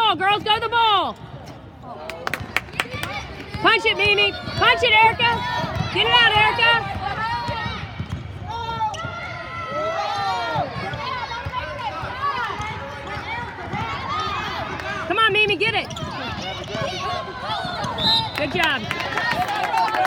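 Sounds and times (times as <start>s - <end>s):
basketball bouncing: 2.4s - 9.3s, 10.5s - 19.4s.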